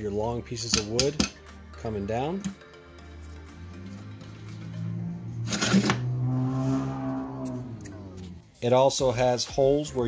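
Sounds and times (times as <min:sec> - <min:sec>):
background music: 0:00.0 - 0:10.0
metal table extension scraping: 0:05.4 - 0:07.6.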